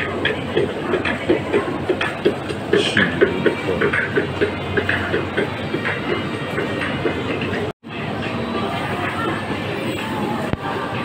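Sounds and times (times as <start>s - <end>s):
rattling rolling noise: 0.0s - 11.0s.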